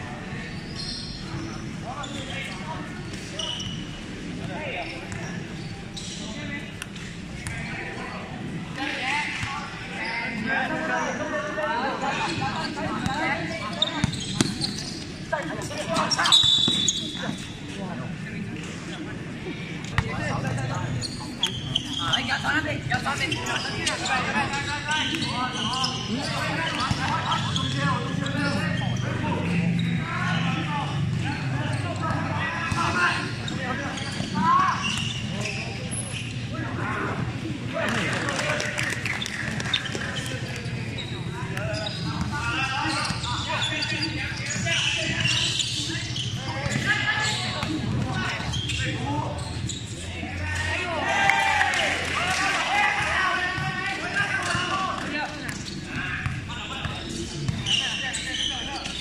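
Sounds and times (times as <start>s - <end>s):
people talking and calling out: 0.0s - 59.0s.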